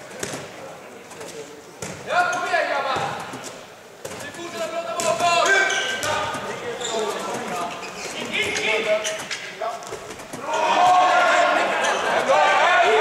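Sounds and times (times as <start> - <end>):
ball bouncing on hall floor: 0.0 - 11.1
people shouting: 10.4 - 13.0.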